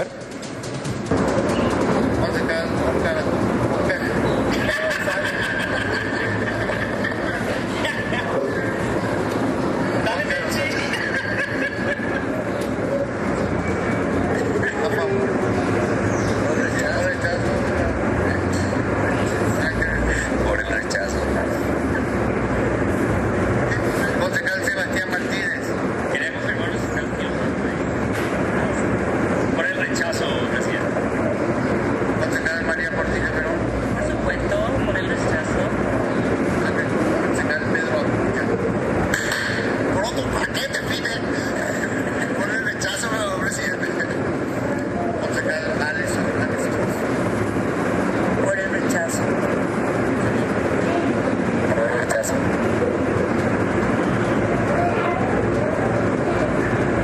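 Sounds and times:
indistinct voices: 0.0 - 57.0.

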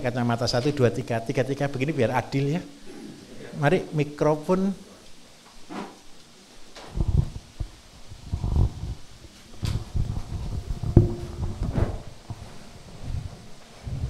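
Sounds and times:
microphone handling thumps: 9.7 - 12.5.

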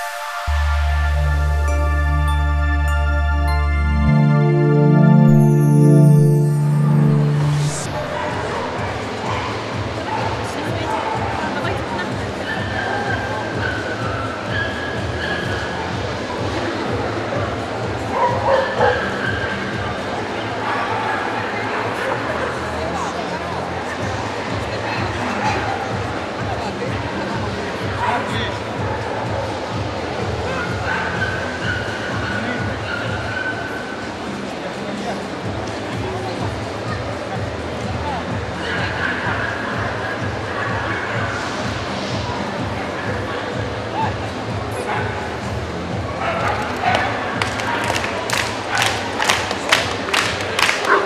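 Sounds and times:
high drawn-out whine: 0.0 - 9.2
crowd hubbub in hall: 0.0 - 51.0.

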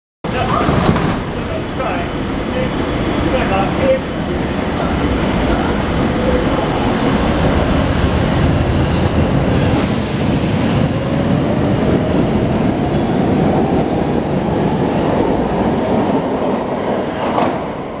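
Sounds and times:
train wheels on track: 0.3 - 18.0.

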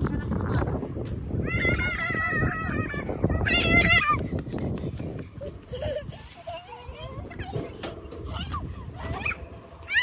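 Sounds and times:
children squealing and chattering: 1.3 - 10.0.

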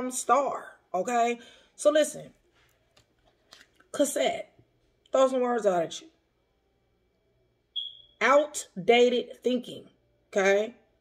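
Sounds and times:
short high-pitched beep: 7.8 - 8.2.

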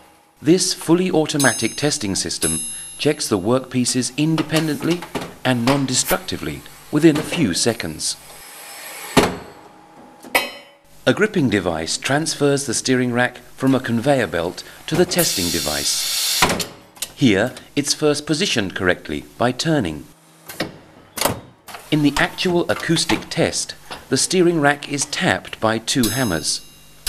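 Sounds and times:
steady hiss: 14.2 - 16.4.

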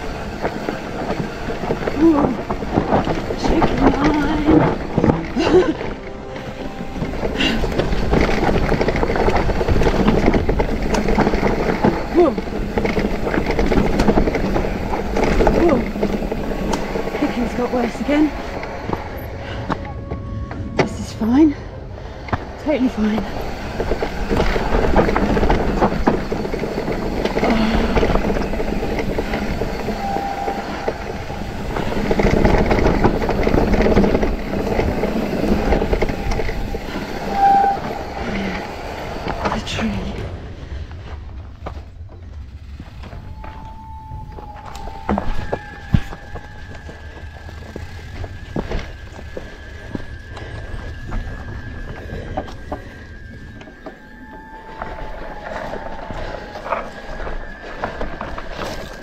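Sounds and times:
bike rattling on dirt trail: 0.0 - 59.0
steady high tone: 14.7 - 24.8.

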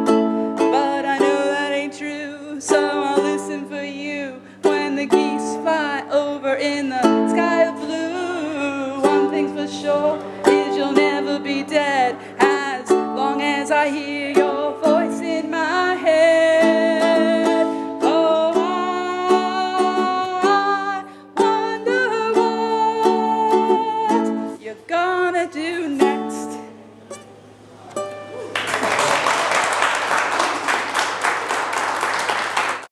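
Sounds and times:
strummed ukulele: 0.0 - 28.7
woman singing: 0.6 - 26.8
applause: 28.5 - 32.9.

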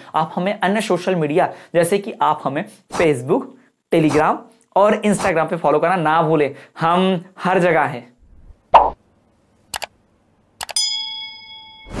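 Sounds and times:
quick clicks: 9.7 - 9.9
bell-like ding: 10.8 - 12.0.

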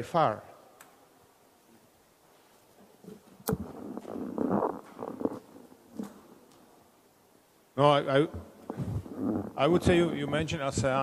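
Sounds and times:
microphone handling rumble: 3.4 - 6.2, 8.3 - 11.0
microphone click: 3.4 - 6.7, 8.3 - 9.9.

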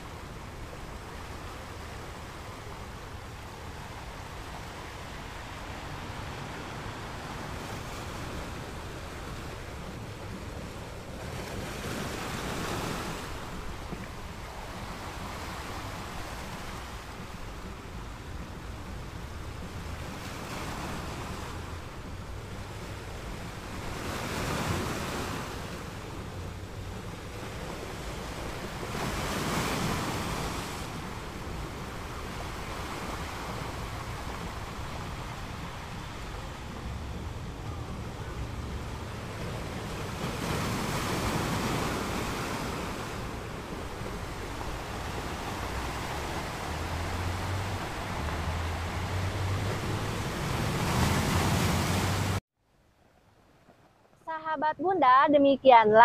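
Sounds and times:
ocean surf breaking: 0.0 - 52.4.

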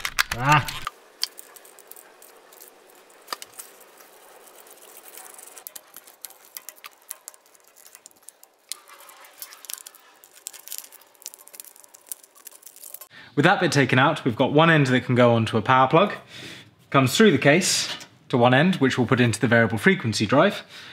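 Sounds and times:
plastic switch box clicking and rattling: 0.0 - 0.9
wires being pulled: 0.0 - 13.1.

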